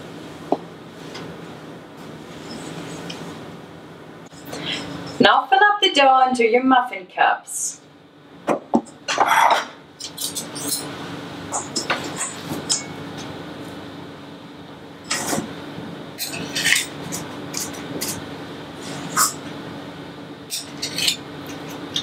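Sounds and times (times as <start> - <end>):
spoons clinking and scraping bowl: 20.5 - 22.0.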